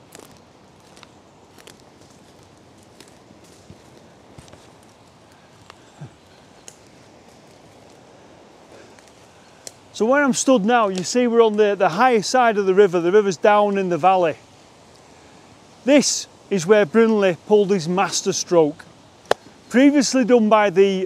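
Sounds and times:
boot footsteps through dead leaves: 0.0 - 5.9.

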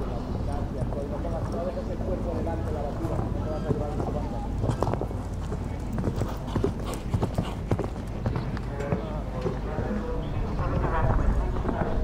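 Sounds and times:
horse hoofbeats on sand: 2.6 - 10.1.

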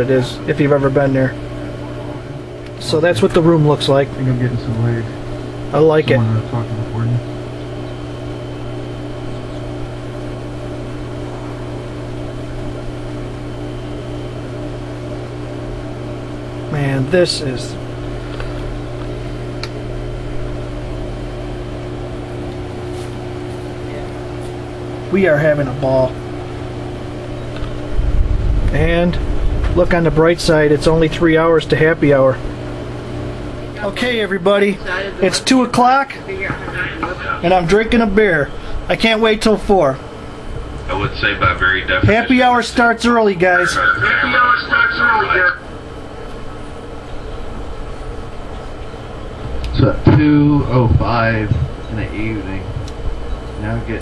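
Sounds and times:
low machine hum: 0.0 - 54.0.

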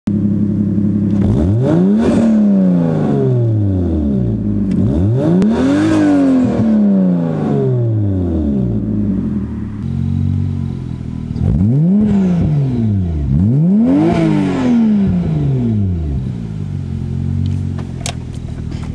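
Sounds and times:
car engine idling: 0.1 - 5.1, 6.9 - 18.9
car engine revving: 0.2 - 18.9.

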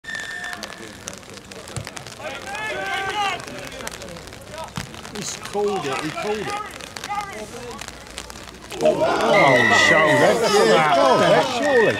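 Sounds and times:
referee whistle blast: 0.0 - 0.8
faint spectators' voices: 0.0 - 11.9.

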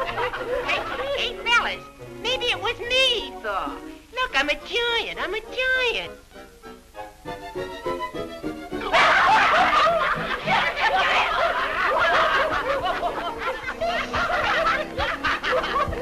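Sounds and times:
crowd of men laughing: 0.0 - 1.2, 8.8 - 16.0
background music: 0.0 - 16.0.

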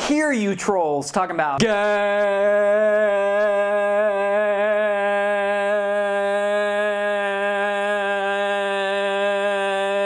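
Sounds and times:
man singing a long note: 1.6 - 10.0.

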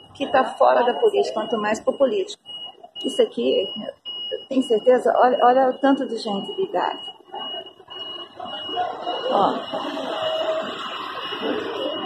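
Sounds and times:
distant crowd chatter: 0.0 - 12.0
high-pitched electronic beeps: 0.0 - 12.0.

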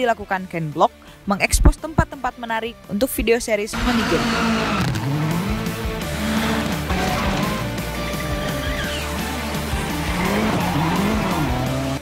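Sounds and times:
background music with steady beat: 0.0 - 12.0
car engine revving: 3.7 - 12.0
tyres skidding: 3.7 - 12.0.

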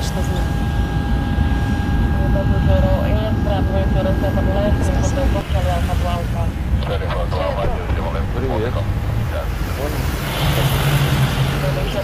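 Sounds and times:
low hum: 0.0 - 12.0
low mechanical rumble: 0.0 - 12.0
voices: 0.0 - 12.0.

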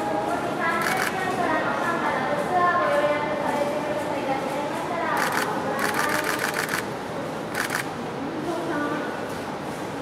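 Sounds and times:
camera shutters clicking rapidly: 0.8 - 1.2, 5.2 - 6.9, 7.6 - 7.9.

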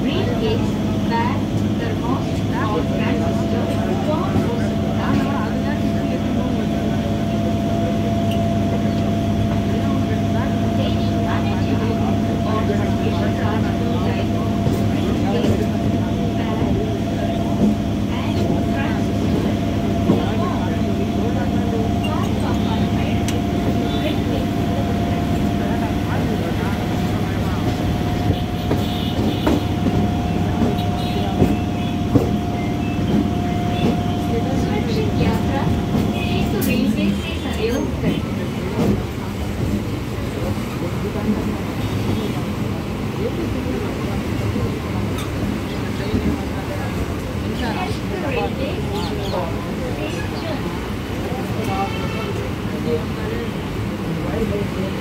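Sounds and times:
people talking: 0.0 - 55.0
train running rumble: 0.0 - 55.0.

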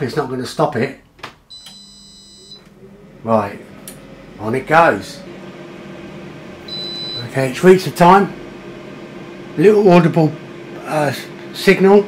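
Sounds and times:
high beep: 1.5 - 2.6, 6.7 - 7.4
air fryer fan humming: 1.5 - 12.0.

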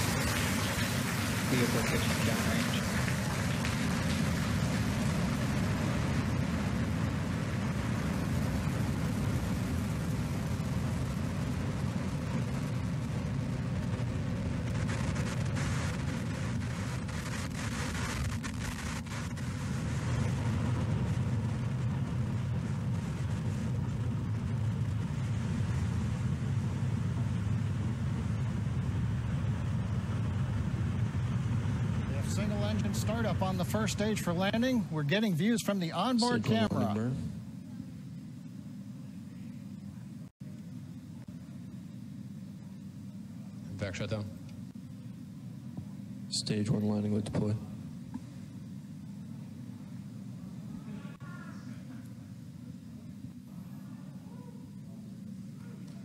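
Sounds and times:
rocket engines rumbling: 0.0 - 56.0.

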